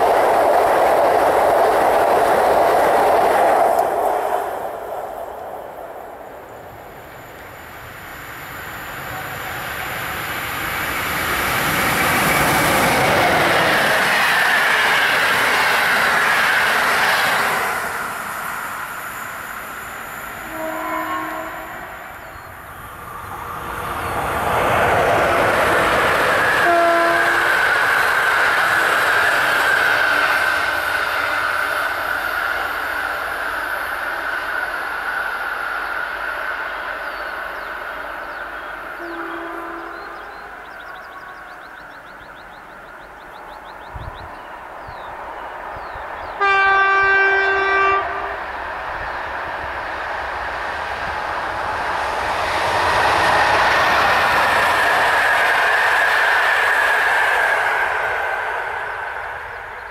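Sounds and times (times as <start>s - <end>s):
electric train passing: 0.0s - 59.9s
train horn toots: 20.4s - 22.1s, 26.6s - 27.6s, 39.0s - 40.4s, 46.4s - 48.4s
train horn steady tone: 20.4s - 22.3s, 26.6s - 27.6s, 39.0s - 41.8s, 46.4s - 48.5s.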